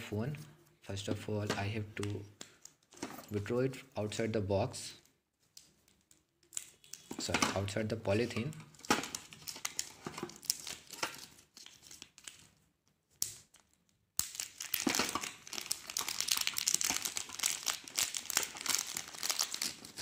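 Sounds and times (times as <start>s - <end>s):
plastic wrap crinkling: 5.4s - 12.6s, 13.6s - 20.0s.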